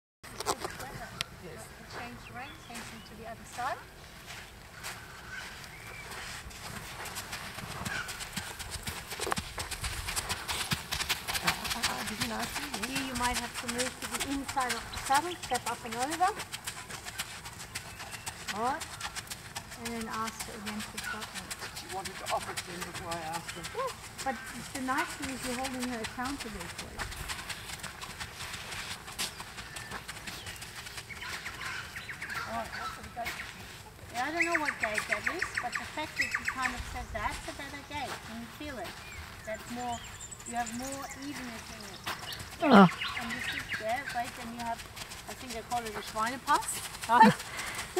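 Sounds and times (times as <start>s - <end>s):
birds calling: 0.3s - 9.4s, 10.1s - 28.2s, 29.0s - 47.9s
horse hoofbeats on sand: 0.3s - 47.9s.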